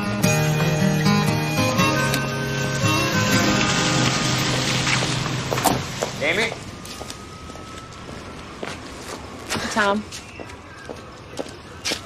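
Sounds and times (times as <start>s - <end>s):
background score music: 0.0s - 6.6s.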